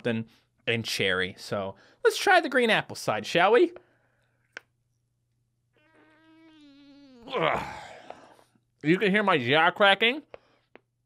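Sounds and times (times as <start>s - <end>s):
faint strained throat hum: 5.8s - 8.5s.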